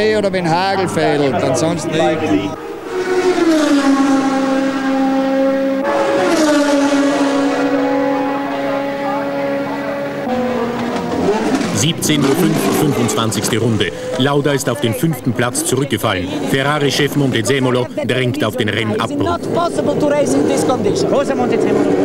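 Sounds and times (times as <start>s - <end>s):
racing car engines at high revs: 1.0s - 18.0s, 18.6s - 22.0s.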